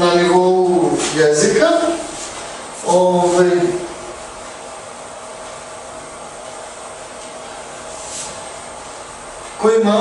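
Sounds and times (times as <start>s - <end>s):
fan-like room noise hiss: 0.0s - 10.0s.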